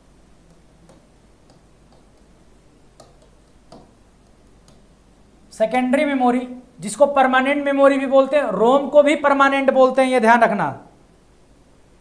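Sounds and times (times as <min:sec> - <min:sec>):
pen tapping on a board: 0:00.5 - 0:02.3, 0:03.0 - 0:04.0.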